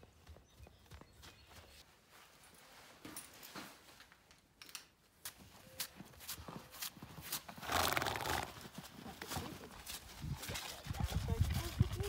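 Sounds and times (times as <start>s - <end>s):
hooves thudding on snow: 0.0s - 3.1s, 5.3s - 12.0s
horse hooves clopping: 0.0s - 3.7s, 5.2s - 12.0s.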